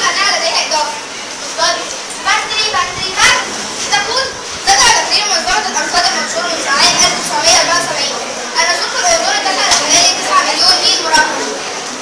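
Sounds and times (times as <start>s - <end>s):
children speaking: 0.0s - 12.0s.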